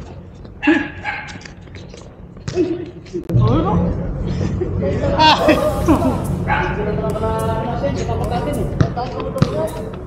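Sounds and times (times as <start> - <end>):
players calling out: 5.1 - 10.0
basketball bouncing on concrete: 8.7 - 10.0.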